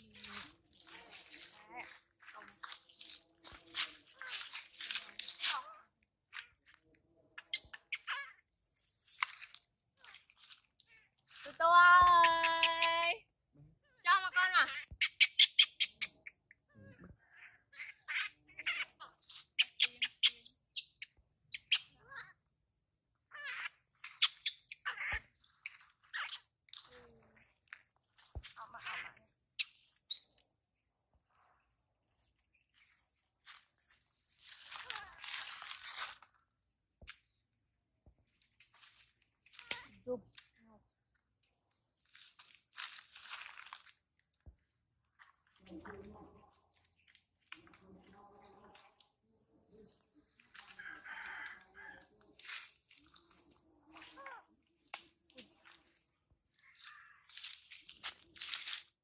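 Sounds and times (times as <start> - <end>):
rustling and crunching leaves: 0.0 - 6.6, 8.9 - 11.7, 32.7 - 36.5, 42.0 - 44.1, 52.2 - 54.4, 56.7 - 59.0
sharp animal chirps: 7.4 - 8.5, 12.1 - 22.4, 23.2 - 26.9, 28.4 - 30.4.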